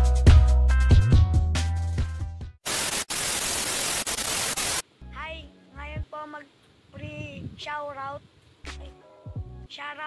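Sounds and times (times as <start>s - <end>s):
television static hiss: 2.6s - 10.0s.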